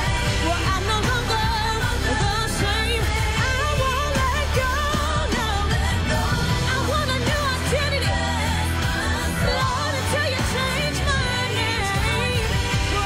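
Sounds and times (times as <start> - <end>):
live band: 0.0 - 13.0
woman singing gospel: 0.0 - 13.0.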